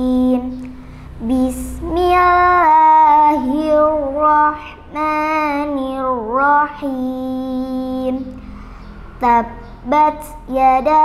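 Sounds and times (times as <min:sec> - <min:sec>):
girl reciting melodically: 0:00.0 - 0:11.0.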